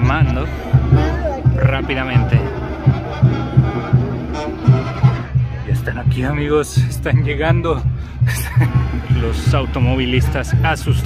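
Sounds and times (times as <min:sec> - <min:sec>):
bass drum beat: 0:00.0 - 0:11.0
street procession band music: 0:00.0 - 0:11.0
wind instruments: 0:00.0 - 0:11.0.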